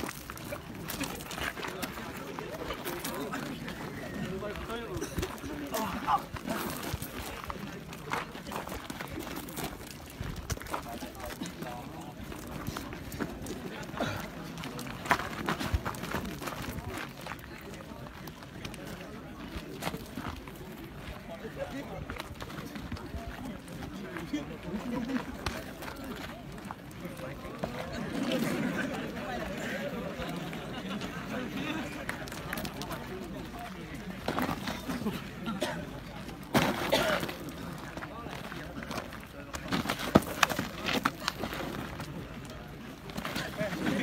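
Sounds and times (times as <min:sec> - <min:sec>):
men's voices: 0:00.0 - 0:44.0
scuffling footsteps on gravelly dirt: 0:00.0 - 0:44.0
men talking: 0:00.1 - 0:15.6, 0:16.7 - 0:41.4.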